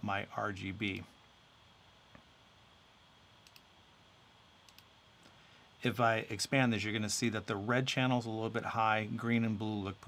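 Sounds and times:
computer mouse clicks: 3.4 - 3.7, 4.6 - 4.9.

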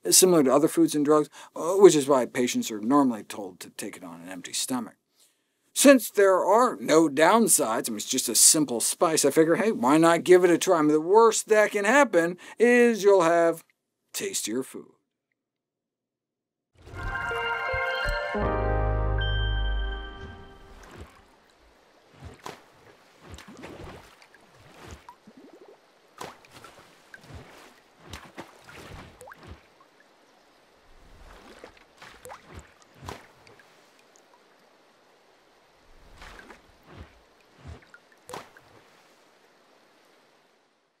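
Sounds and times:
logo jingle with deep bass note: 16.9 - 20.8
drip-like plops: 22.2 - 29.7.

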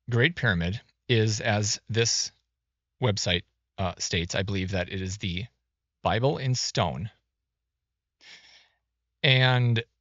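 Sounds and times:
person speaking: 0.1 - 2.3, 3.0 - 5.5, 6.1 - 7.1, 9.2 - 9.8.

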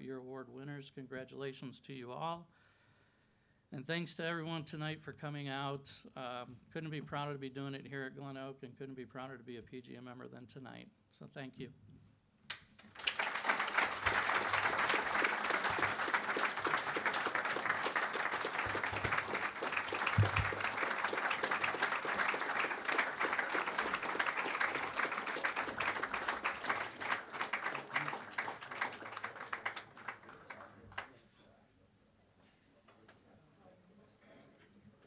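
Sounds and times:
crowd applauding: 12.8 - 31.2.

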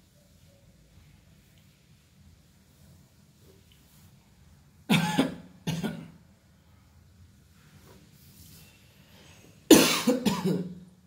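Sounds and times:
person coughing: 4.9 - 6.2, 9.7 - 10.8.

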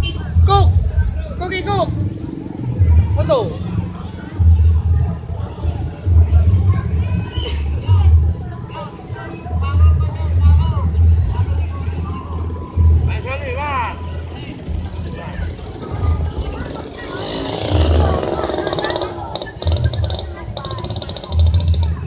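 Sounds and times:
spectators' voices: 0.0 - 22.0.

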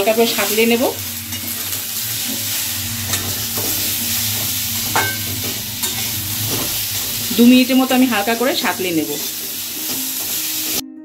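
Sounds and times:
steady low hum: 0.0 - 8.6
vegetables sizzling in oil: 0.0 - 10.8
metal spatula scraping pan: 0.4 - 10.5.

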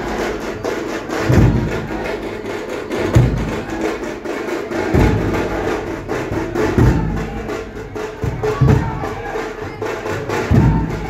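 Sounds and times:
fast smaller drum strokes: 0.0 - 11.0
heavy bass drum beat: 0.0 - 11.0.

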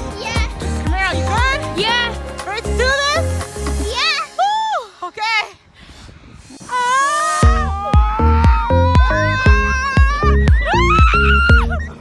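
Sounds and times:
synth music with bass beat: 0.0 - 4.4, 7.4 - 12.0
people laughing and squealing: 6.7 - 12.0.

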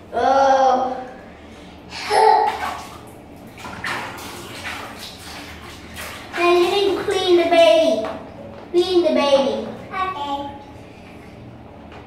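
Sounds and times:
water splashing in plastic tubs: 2.1 - 8.3.

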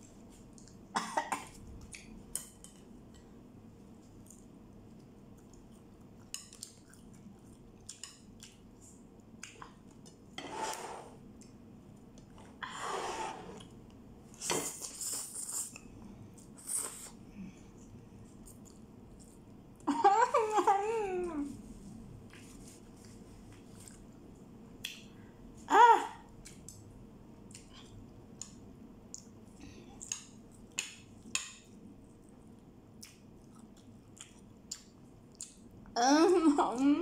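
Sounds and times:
woman's high-pitched cry: 25.7 - 26.2.

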